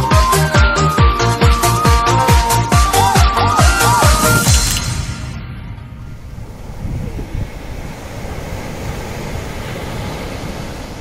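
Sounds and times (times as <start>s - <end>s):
music: 0.0s - 6.0s
wind on microphone: 3.7s - 11.0s
waves breaking on a beach: 6.4s - 11.0s.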